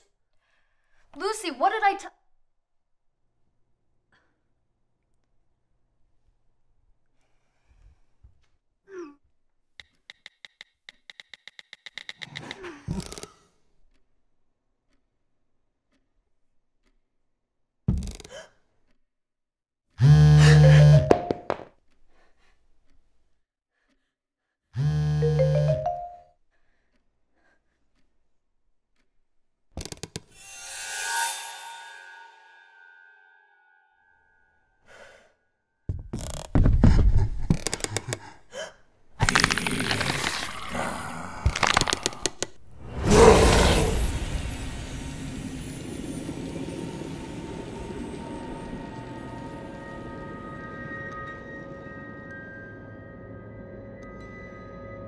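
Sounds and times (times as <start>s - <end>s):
sharp clicks: 9.8s - 13.3s
phone buzzing: 20.0s - 21.3s, 24.8s - 26.2s
low dark drone: 42.8s - 55.0s
rising electronic chime: 44.3s - 55.0s.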